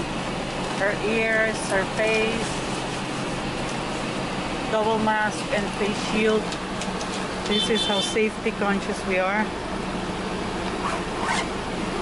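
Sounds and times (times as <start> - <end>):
steady low hum: 0.0 - 12.0
zipper being pulled shut: 10.8 - 11.5.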